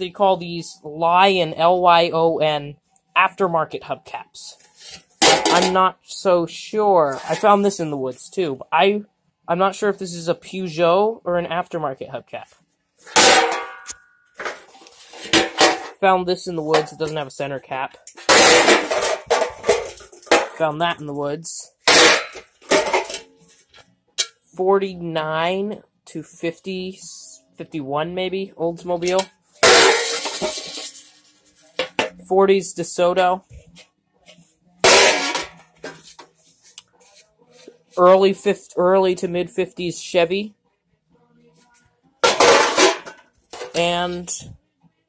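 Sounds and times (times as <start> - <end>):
metal hubcap clanging: 5.2 - 5.8, 13.1 - 15.9, 29.0 - 31.1
metal hubcaps clattering: 29.0 - 32.2, 42.2 - 44.0
faint taps and scrapes: 35.8 - 38.0.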